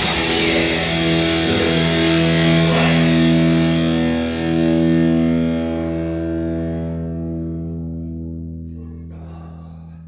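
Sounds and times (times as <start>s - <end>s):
distorted electric guitar chord: 0.0s - 8.8s.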